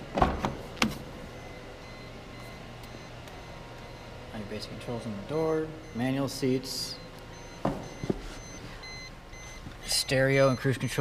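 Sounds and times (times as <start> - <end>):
car warning chime beeping: 1.1 - 11.0.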